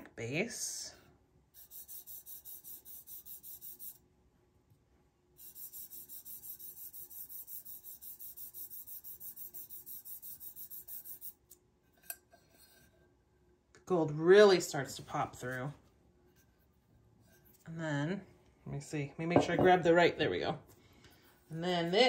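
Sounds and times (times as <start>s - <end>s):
fingertip rubbing powder: 1.6s - 4.0s, 5.4s - 11.5s.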